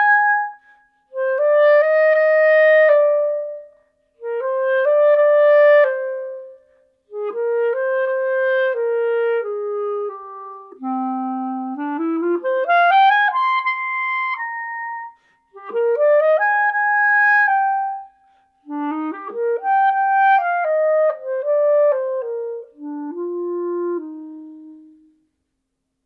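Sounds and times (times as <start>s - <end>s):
solo clarinet melody: 0.0s - 25.3s.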